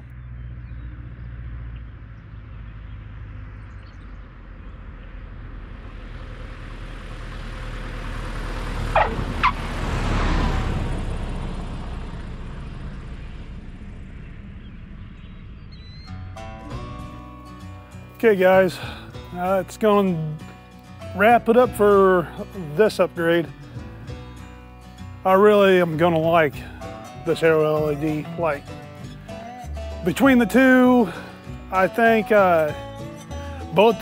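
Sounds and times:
light airplane engine drone: 0:10.8 - 0:16.7.

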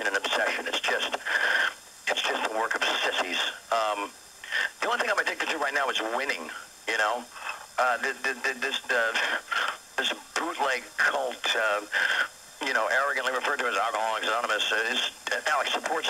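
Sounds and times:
man speaking through tinny radio: 0:00.0 - 0:01.3, 0:02.1 - 0:16.0.

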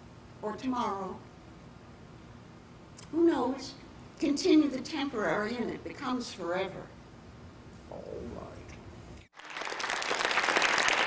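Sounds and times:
audience applauding: 0:09.3 - 0:11.0.

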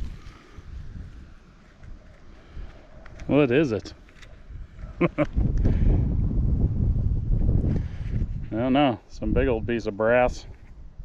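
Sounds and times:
wind buffeting microphone: 0:00.0 - 0:03.5, 0:04.3 - 0:11.0
short laugh: 0:04.8 - 0:05.4.

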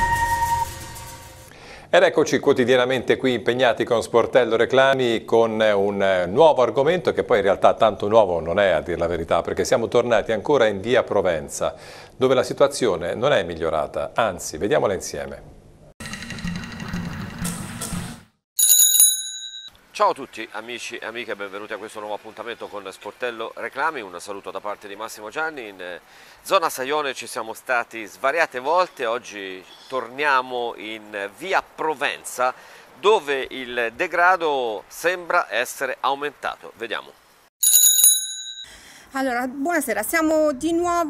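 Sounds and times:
tv theme music: 0:00.0 - 0:01.5
bicycle bell ringing: 0:18.6 - 0:19.7, 0:37.6 - 0:38.7.

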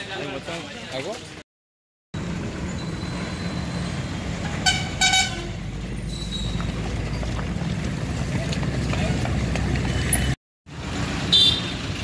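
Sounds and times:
street traffic: 0:00.0 - 0:01.4, 0:02.2 - 0:12.0
vehicle horn toots: 0:04.6 - 0:05.6, 0:11.3 - 0:11.8.

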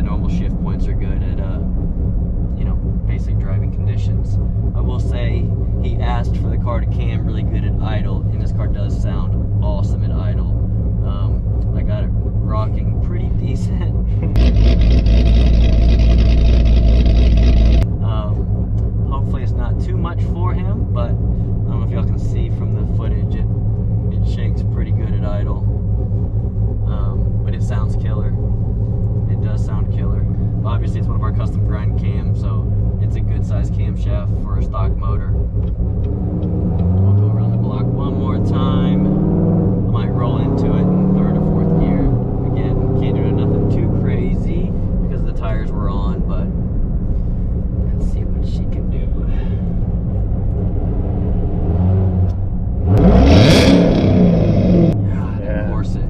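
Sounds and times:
car engine running while driving: 0:00.0 - 0:56.0
engine revving up: 0:14.2 - 0:17.9, 0:35.8 - 0:45.3, 0:49.9 - 0:56.0.

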